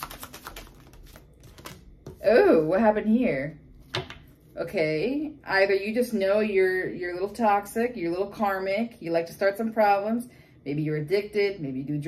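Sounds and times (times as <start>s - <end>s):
cards being shuffled: 0.0s - 2.2s.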